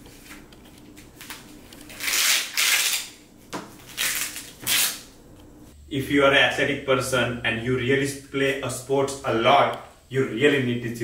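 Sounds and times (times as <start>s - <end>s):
strap rustling and scraping: 0.0s - 5.0s.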